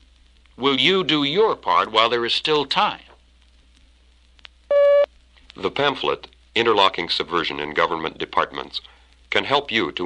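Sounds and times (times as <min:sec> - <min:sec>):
faint hiss: 0:00.0 - 0:10.0
electronic beep tone: 0:04.7 - 0:05.1.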